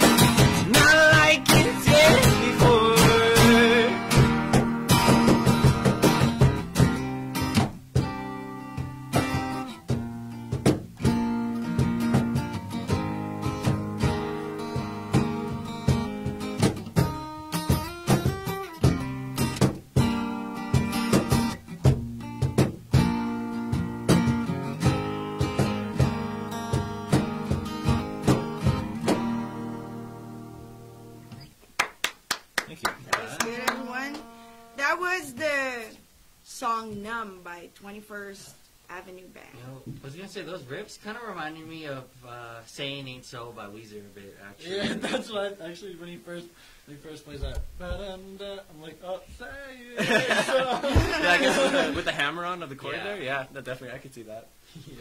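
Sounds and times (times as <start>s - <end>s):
acoustic guitar strumming chords: 0.0s - 31.6s, 33.2s - 36.0s, 49.5s - 53.3s
sharp hand claps: 31.7s - 34.3s.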